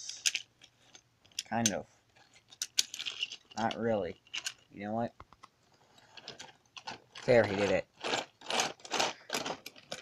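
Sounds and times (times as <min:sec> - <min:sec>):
plastic toy pieces clattering: 0:00.0 - 0:04.7, 0:05.8 - 0:10.0.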